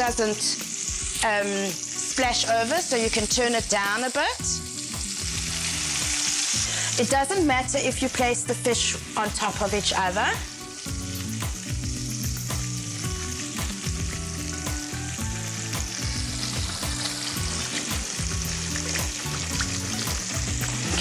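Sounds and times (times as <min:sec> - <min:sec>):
fish sizzling in hot oil: 0:00.0 - 0:21.0.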